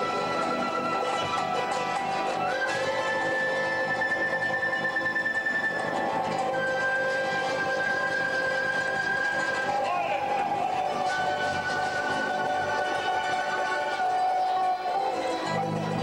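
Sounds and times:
held high wind notes: 0.0 - 16.0
strummed charangos and guitar: 0.0 - 16.0.

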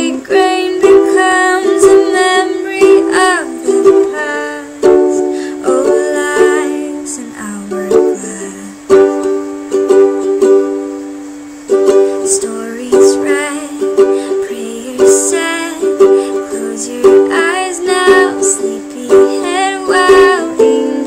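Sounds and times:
ukulele strumming chords: 0.0 - 21.0.

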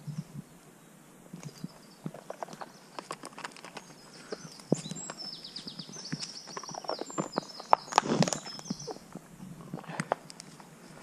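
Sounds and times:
dry twigs cracking and snapping: 1.4 - 9.2.

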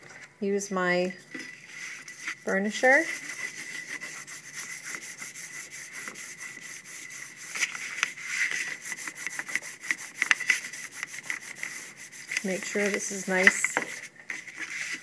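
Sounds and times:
burnisher rubbing over paper: 1.4 - 15.0.

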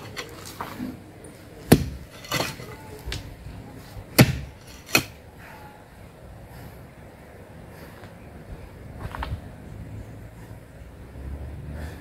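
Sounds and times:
pickaxe striking stony ground: 0.0 - 0.6, 1.6 - 3.2, 4.1 - 5.2.

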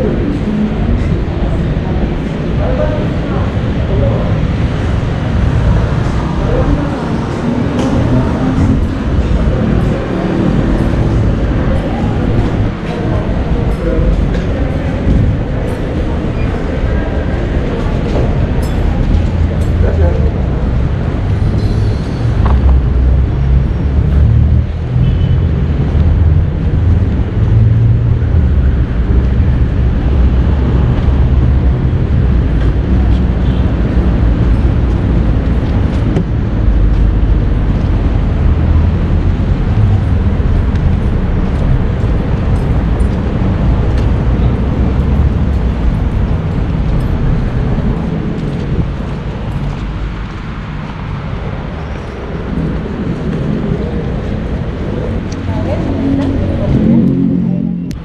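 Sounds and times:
road traffic rumble: 0.0 - 58.0.

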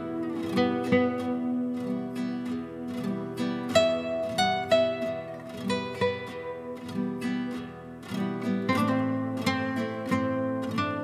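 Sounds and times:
classical guitar duet: 0.0 - 11.0.

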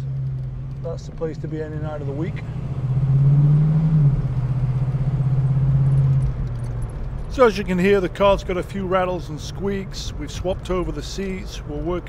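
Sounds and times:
car body rattles and squeaks: 0.0 - 2.8, 5.4 - 9.8
car engine hum from cabin: 0.0 - 12.0
road noise: 0.0 - 12.0.

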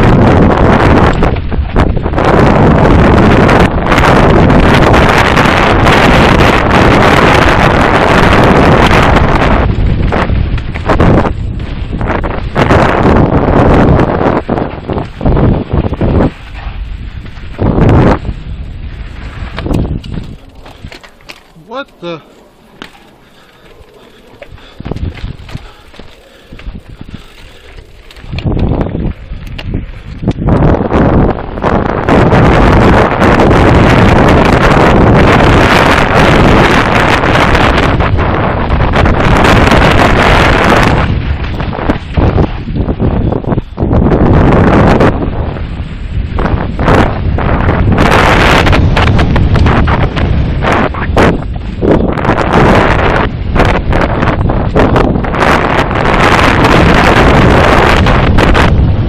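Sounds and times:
tyre rumble: 0.0 - 21.7, 22.4 - 59.0
wind buffeting microphone: 0.0 - 59.0
bike rattles and knocks: 19.2 - 21.6, 24.4 - 30.5
bike wheels clattering over rocks: 19.2 - 21.7.

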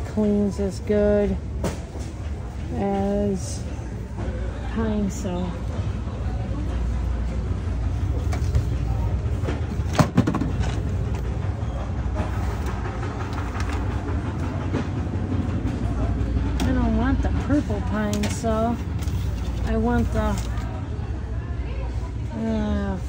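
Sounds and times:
woman speaking: 0.0 - 1.4, 2.7 - 3.7, 4.7 - 5.6, 16.6 - 18.8, 19.6 - 20.6, 22.3 - 23.0
low store background rumble: 0.0 - 23.0.

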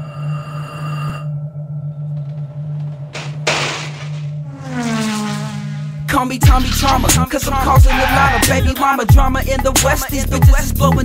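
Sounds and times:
low drone with high tones: 0.0 - 3.5
falling pitched sweep: 4.3 - 9.3.

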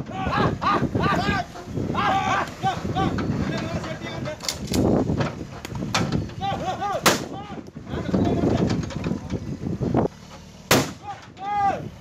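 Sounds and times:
gunshots: 7.0 - 7.3, 10.7 - 11.1.

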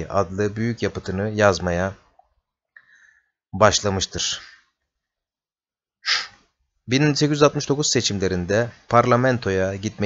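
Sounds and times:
man speaking: 0.0 - 2.1, 3.5 - 4.7, 6.8 - 10.0
man's sharp intake of breath: 6.0 - 6.6.

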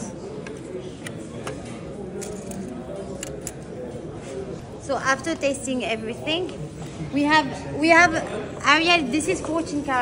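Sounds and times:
murmur of background voices: 0.0 - 10.0.

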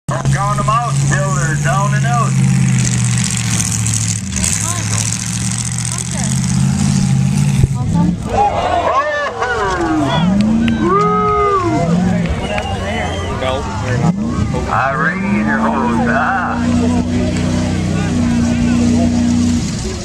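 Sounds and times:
car engines droning: 0.0 - 20.0
voices calling out: 7.7 - 20.0.

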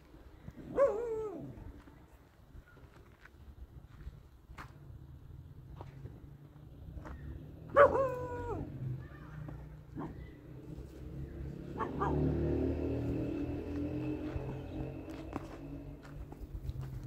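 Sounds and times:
dog barking: 0.7 - 1.4, 7.7 - 8.6, 11.7 - 12.4.

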